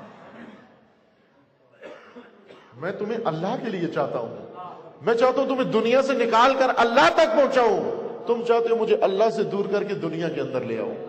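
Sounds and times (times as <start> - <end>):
man speaking: 2.8 - 11.0.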